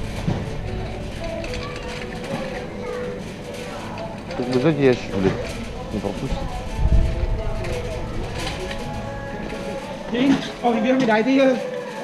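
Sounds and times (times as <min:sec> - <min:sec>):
distant unintelligible voices: 0:00.0 - 0:12.0
shopping trolley rolling on concrete: 0:00.0 - 0:12.0
store background music: 0:00.0 - 0:12.0.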